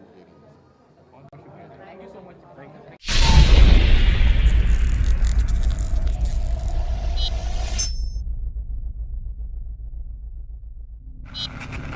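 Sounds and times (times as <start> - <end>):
low rumble: 3.1 - 11.9.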